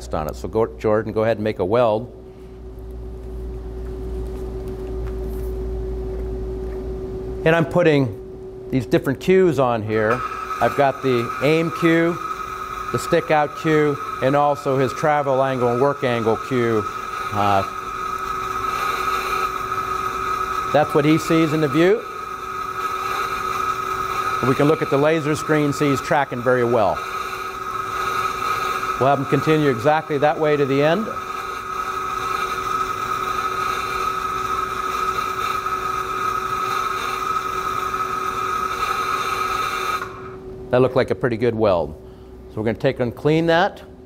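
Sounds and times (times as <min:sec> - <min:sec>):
simulated welding arc hiss: 0:08.9 - 0:40.5.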